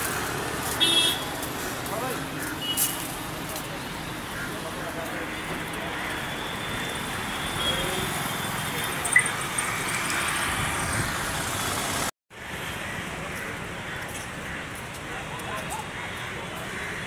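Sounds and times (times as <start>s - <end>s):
hum of passing cars: 0.0s - 14.5s.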